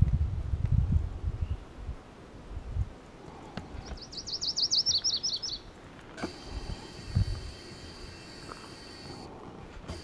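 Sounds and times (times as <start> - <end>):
warbler singing: 3.8 - 5.7.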